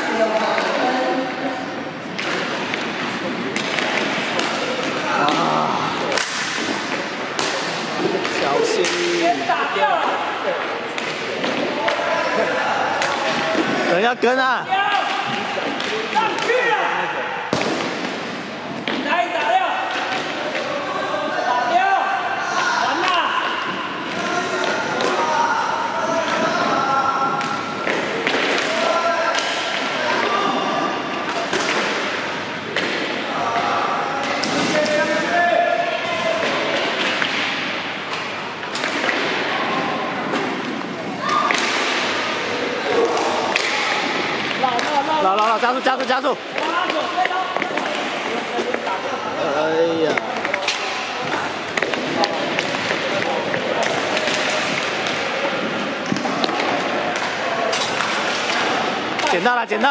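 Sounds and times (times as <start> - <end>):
hockey sticks and puck knocking: 2.1 - 5.5, 6.1 - 9.4, 27.3 - 30.4, 31.2 - 35.2, 40.3 - 42.1, 42.9 - 49.0, 50.1 - 59.4.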